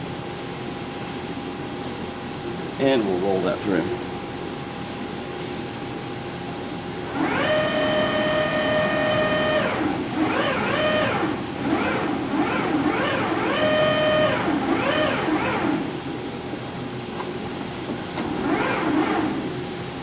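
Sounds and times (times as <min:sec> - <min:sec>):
roll bender whine: 0:07.0 - 0:16.4, 0:17.1 - 0:20.0.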